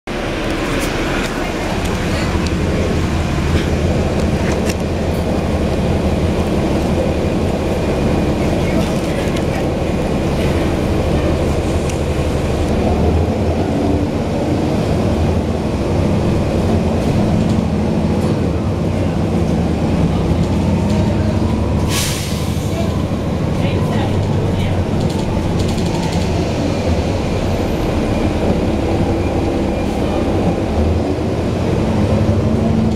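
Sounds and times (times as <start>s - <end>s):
bus diesel engine drone: 0.0s - 32.9s.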